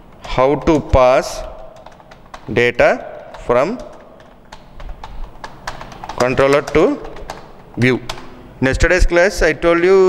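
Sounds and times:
keyboard typing clicks: 0.1 - 8.4.

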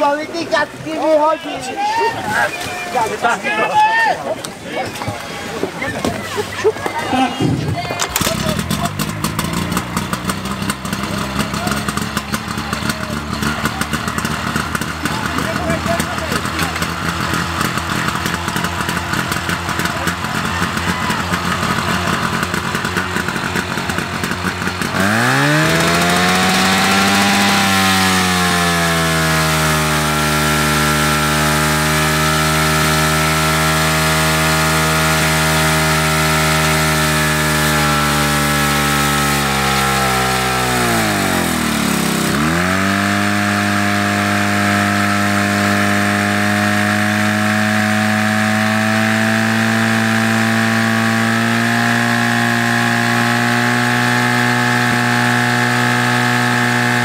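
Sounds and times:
fire pump engine revving: 6.0 - 57.0.

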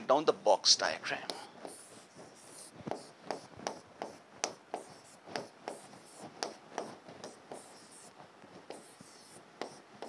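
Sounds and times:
pen scratching on screen: 1.6 - 10.0
pen tapping on screen: 2.9 - 7.9, 8.5 - 9.8.

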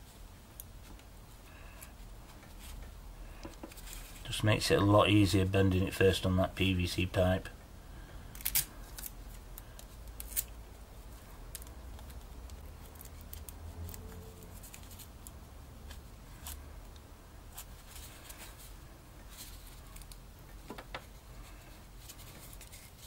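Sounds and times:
clicks and rustles of handling wire: 0.0 - 5.0, 7.5 - 23.0.

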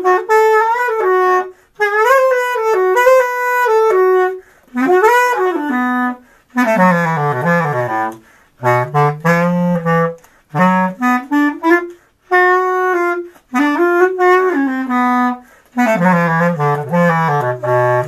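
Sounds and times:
bass clarinet playing jazz blues: 0.0 - 18.0.

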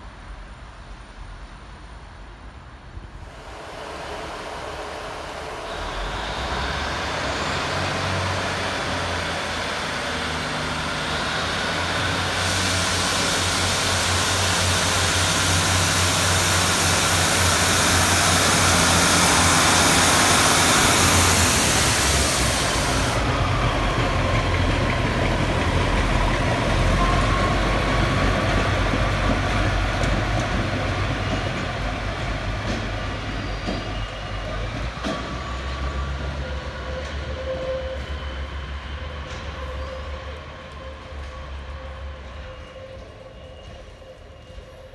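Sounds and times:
diesel train engine: 0.0 - 44.9
hiss: 3.2 - 23.5
wheel squeal on curved track: 33.3 - 44.9.

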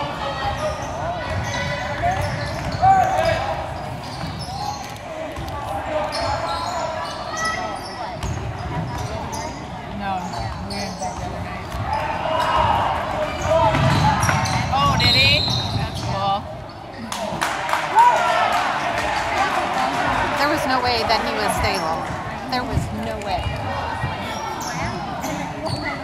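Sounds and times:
crowd chatter: 0.0 - 26.0
sneakers squeaking on hardwood: 0.4 - 17.0, 21.4 - 26.0.

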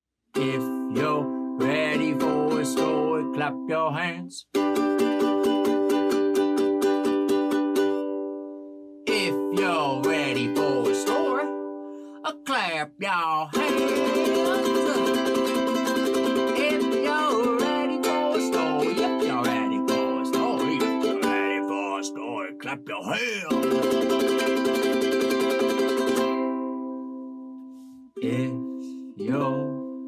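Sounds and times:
man singing: 0.4 - 4.5, 9.1 - 11.5, 13.2 - 23.9, 28.2 - 29.8
ukulele strumming: 0.4 - 12.2, 13.5 - 30.0.

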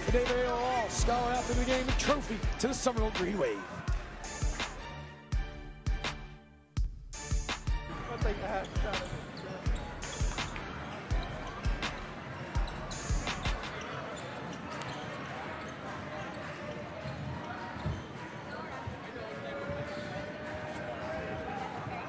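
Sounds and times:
crowd chatter: 0.0 - 5.1, 7.7 - 22.0.

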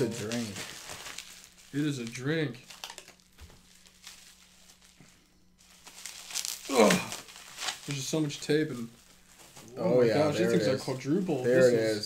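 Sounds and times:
package rustling: 0.0 - 9.8
low steady hum: 0.0 - 12.0.

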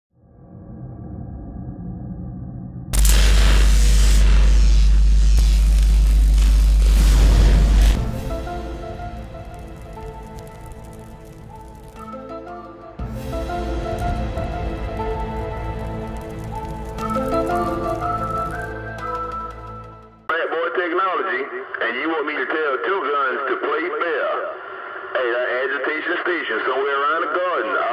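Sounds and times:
deep steady rumble: 0.5 - 12.0
crackling electricity: 2.9 - 20.3
intro music: 3.0 - 20.3
man's voice over radio: 20.3 - 27.9.

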